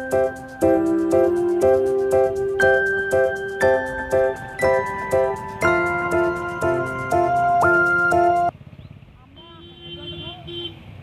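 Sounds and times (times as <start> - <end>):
steady held tone: 0.0 - 8.5
vehicle engine throbbing: 0.0 - 8.5.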